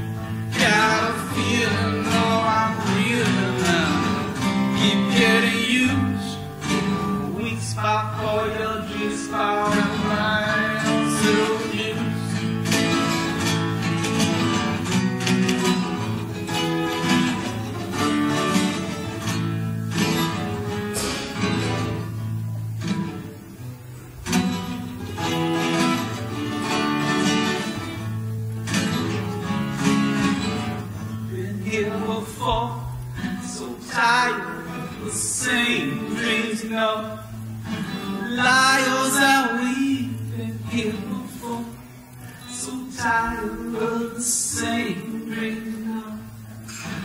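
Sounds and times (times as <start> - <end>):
acoustic guitar strumming chords: 0.0 - 47.0.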